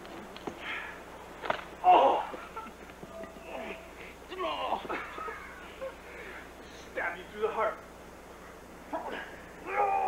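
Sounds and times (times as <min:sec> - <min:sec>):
high wavering whine: 0:00.0 - 0:10.0.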